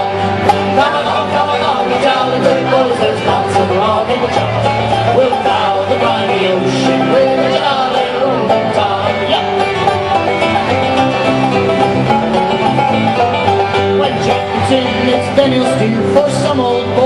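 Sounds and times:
banjo plucking: 0.0s - 17.0s
folk band playing: 0.0s - 17.0s.

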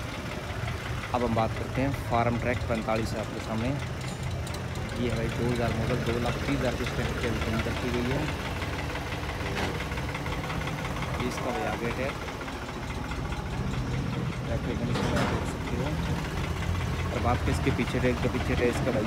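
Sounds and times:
tractor engine idling: 0.0s - 19.0s.

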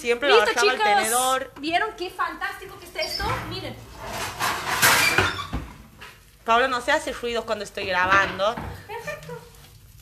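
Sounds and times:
scraping and rustling: 2.8s - 6.3s.

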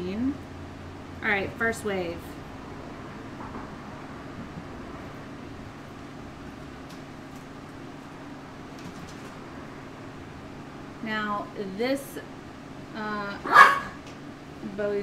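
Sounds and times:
machine hum with low drone: 0.0s - 15.0s.

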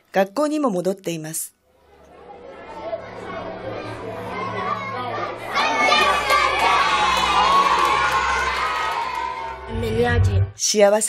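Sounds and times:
children shouting: 1.7s - 9.7s.

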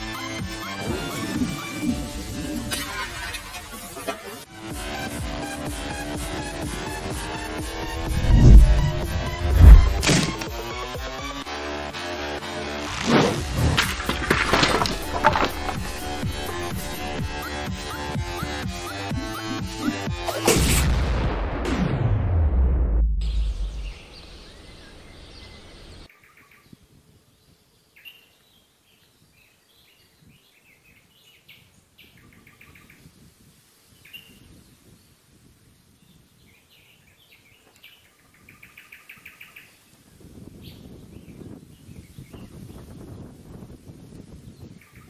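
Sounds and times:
low rustling: 7.6s - 10.5s
deep boom: 7.7s - 10.4s, 20.6s - 24.3s
birds chirping: 23.5s - 26.8s.

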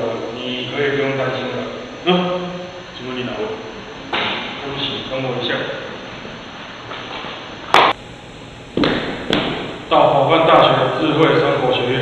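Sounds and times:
sharp thumps: 8.7s - 9.9s.

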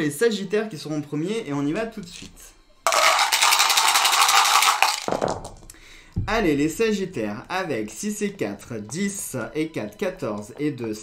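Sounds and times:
dice rattling in a dice cup: 2.9s - 5.7s
dice tipped into a tray: 2.9s - 5.8s.

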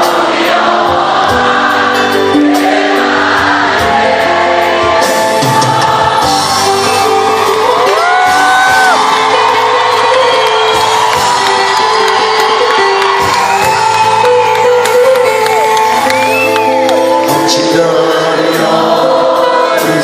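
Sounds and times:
live pop band with strings: 0.0s - 20.0s
audience shouting and whooping: 3.4s - 17.3s.

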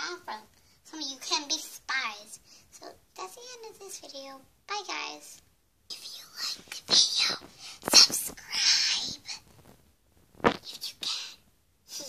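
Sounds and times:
person whispering: 5.9s - 9.4s, 10.5s - 12.0s.

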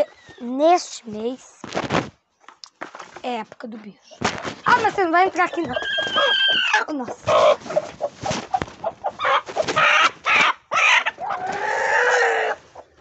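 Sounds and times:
chickens squawking and clucking: 4.4s - 13.0s.

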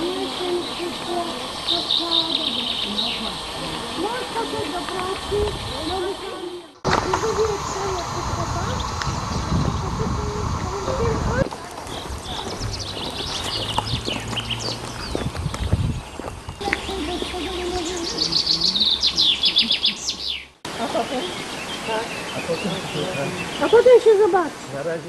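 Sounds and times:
faint voices: 0.0s - 14.8s
low rumbling noise: 0.0s - 21.9s
songbirds chirping: 0.0s - 25.0s.

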